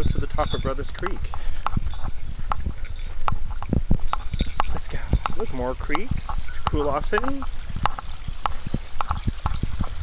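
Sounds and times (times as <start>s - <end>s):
footsteps on dirt trail: 0.0s - 10.0s.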